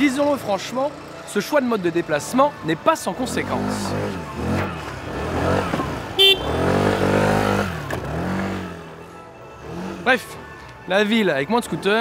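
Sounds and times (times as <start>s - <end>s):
motor scooters revving and passing: 3.1s - 9.0s, 9.6s - 10.4s
short horn beep: 6.2s - 6.7s.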